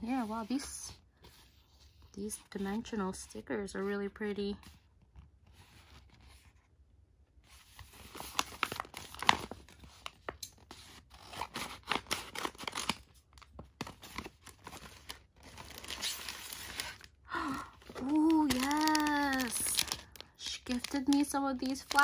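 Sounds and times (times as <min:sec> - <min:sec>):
packaging crackling and tearing: 0:07.8 - 0:22.0.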